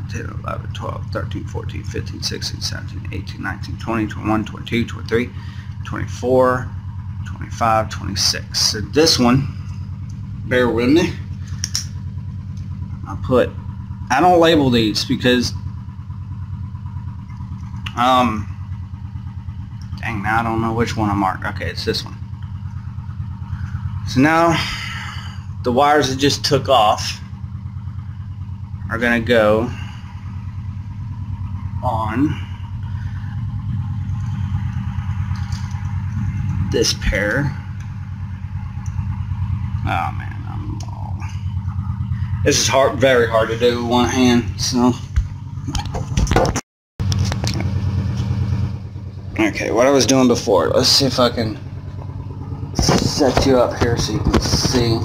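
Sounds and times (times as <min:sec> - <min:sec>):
machine hum with fast pulse: 0:00.0 - 0:55.0.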